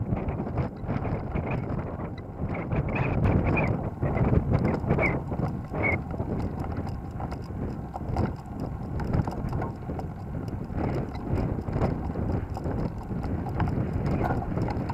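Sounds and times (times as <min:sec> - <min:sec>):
wind buffeting microphone: 0:00.0 - 0:14.9.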